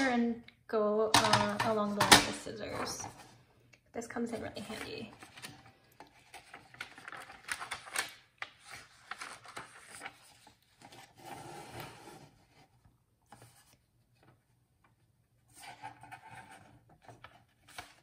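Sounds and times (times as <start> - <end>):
paper rubbing and rustling: 6.1 - 14.4, 15.5 - 18.0.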